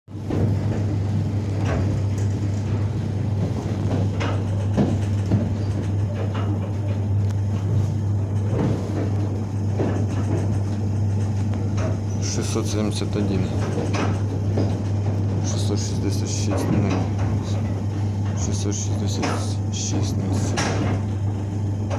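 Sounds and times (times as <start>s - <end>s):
train running rumble: 0.1s - 21.9s.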